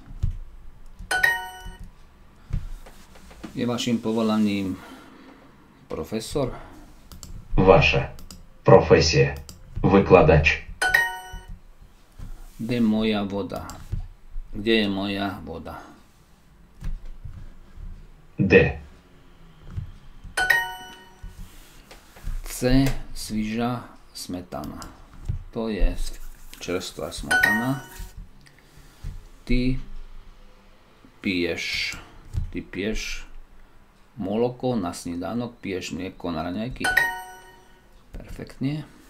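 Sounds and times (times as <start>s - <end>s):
bright ding chime: 1.1s - 1.8s, 10.8s - 11.5s, 20.4s - 21.2s, 27.3s - 28.1s, 36.8s - 37.8s.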